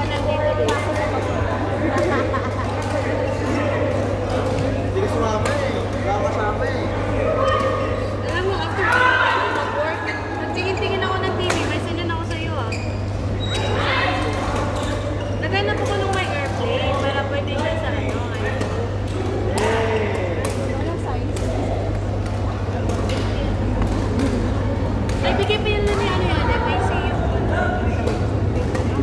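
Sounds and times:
steady low hum: 0.0s - 29.0s
sneakers squeaking on court: 12.5s - 13.8s.

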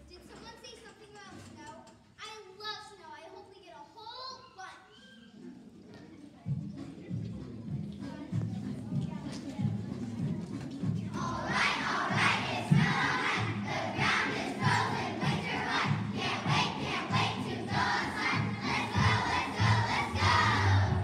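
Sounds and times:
music: 5.3s - 21.0s
children singing together: 11.1s - 21.0s.

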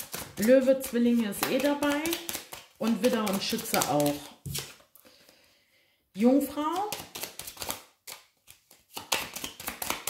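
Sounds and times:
woman speaking: 0.4s - 4.4s, 6.2s - 7.0s.

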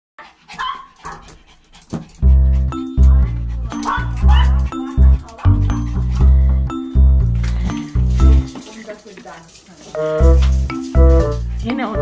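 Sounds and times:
small dogs yipping and whining: 0.6s - 1.3s.

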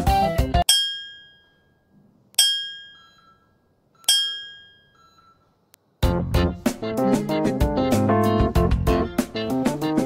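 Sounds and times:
bell-like timer chime: 0.6s - 5.5s.

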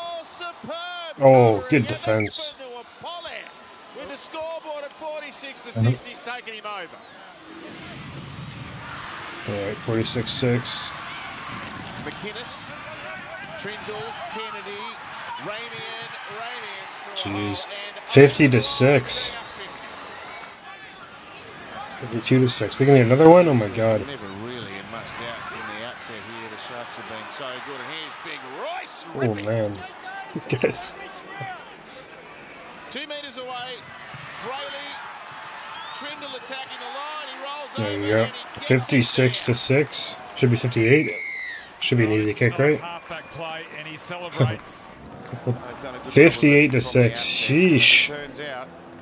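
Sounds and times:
commentator talking: 0.0s - 3.3s, 4.0s - 6.4s, 9.5s - 10.9s, 13.6s - 19.5s, 22.0s - 27.4s, 28.8s - 31.0s, 37.6s - 41.2s, 41.8s - 48.3s
stadium crowd noise: 0.0s - 49.0s.

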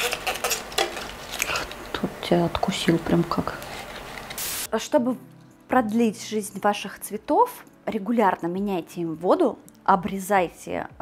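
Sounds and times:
flower stems clicking and rustling: 0.0s - 4.4s.

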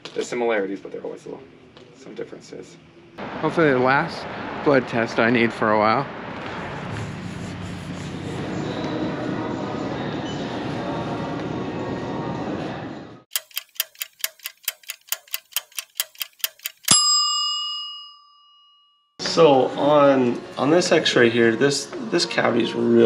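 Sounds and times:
fast clock ticking: 13.3s - 17.0s
bell ding ringing: 16.8s - 19.2s.

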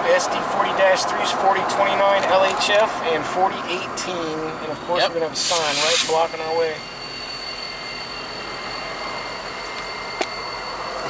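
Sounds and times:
diesel locomotives idling: 0.0s - 11.0s.

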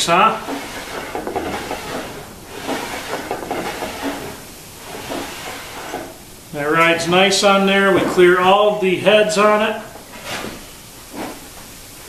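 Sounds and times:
wood sliding on metal fence: 0.4s - 6.2s.

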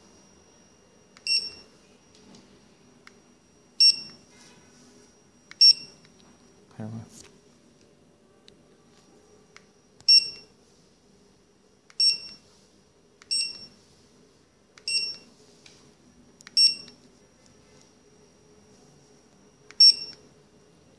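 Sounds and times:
barcode scanner beeping: 1.0s - 1.7s, 3.0s - 4.3s, 5.4s - 6.2s, 9.5s - 10.6s, 11.9s - 12.4s, 13.2s - 13.8s, 14.8s - 15.3s, 16.4s - 17.0s, 19.7s - 20.4s.

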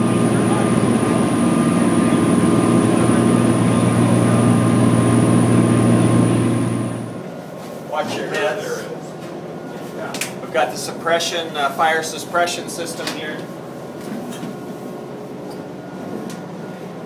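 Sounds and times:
boat engines droning: 0.0s - 9.8s.

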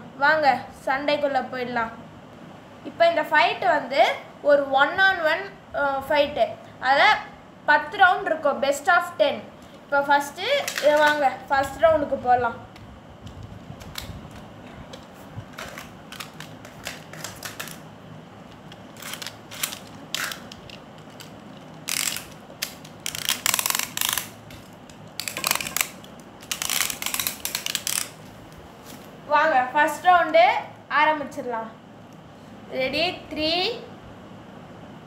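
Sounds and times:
plastic toy clicks: 19.0s - 24.3s, 25.2s - 28.2s
plastic launcher ratcheting: 19.0s - 28.2s.

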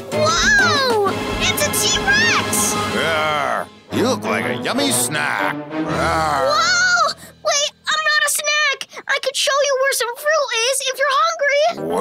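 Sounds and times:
high-pitched cartoon voice: 5.9s - 12.0s.

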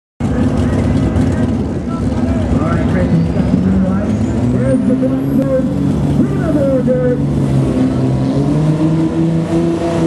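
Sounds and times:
diesel engine running under load: 0.2s - 10.0s.

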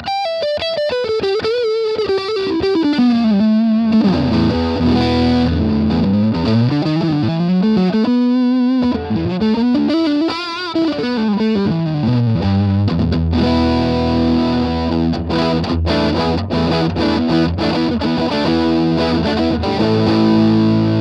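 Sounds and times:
overdriven electric guitar lead: 0.0s - 21.0s.

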